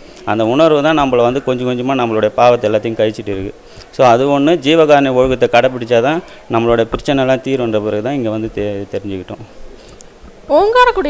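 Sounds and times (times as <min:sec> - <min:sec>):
man speaking: 0:00.2 - 0:09.6.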